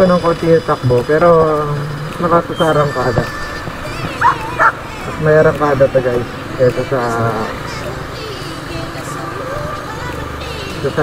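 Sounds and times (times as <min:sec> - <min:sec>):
motorcycle running: 0:00.0 - 0:11.0
dog yips: 0:02.6 - 0:05.1.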